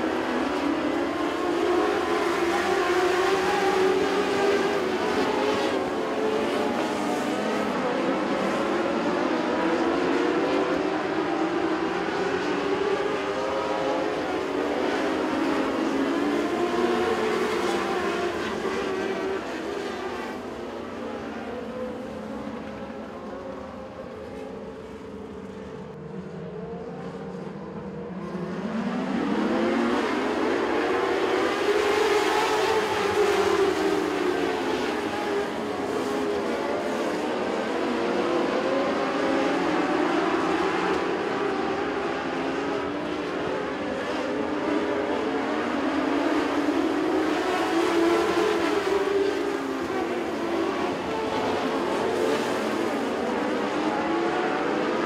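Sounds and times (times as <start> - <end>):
race car engines racing: 0.0 - 55.0.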